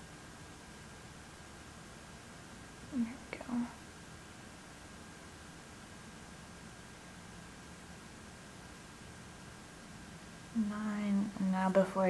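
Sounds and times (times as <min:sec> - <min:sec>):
faint room hiss: 0:00.0 - 0:12.0.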